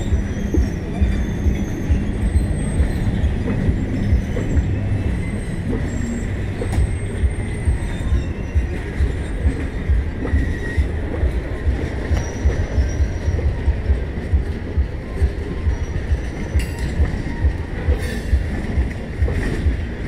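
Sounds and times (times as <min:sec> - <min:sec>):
train coaches rumbling past: 0:00.0 - 0:20.0
wheels squealing on rails: 0:00.0 - 0:20.0.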